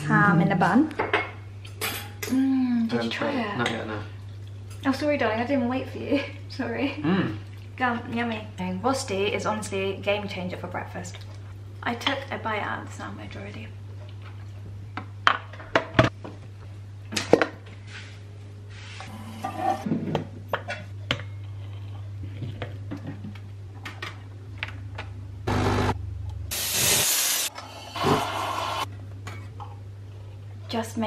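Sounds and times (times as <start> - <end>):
espresso machine steam hissing: 26.5 - 28.9.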